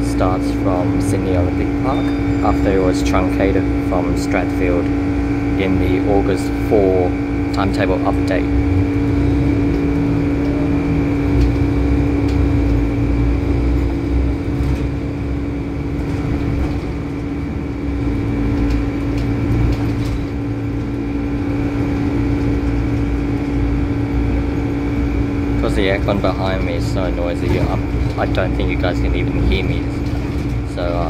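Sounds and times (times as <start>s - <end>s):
air conditioning hum: 0.0s - 31.0s
engine and tyre rumble: 0.0s - 31.0s.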